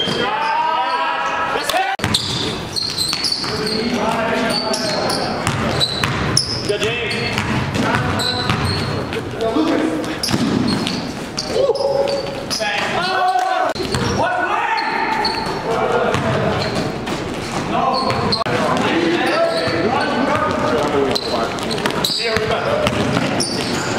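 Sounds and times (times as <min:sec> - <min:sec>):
players calling out: 0:00.0 - 0:23.9
sneakers squeaking: 0:00.0 - 0:23.9
basketball bouncing on hardwood: 0:05.4 - 0:09.2, 0:21.8 - 0:23.8.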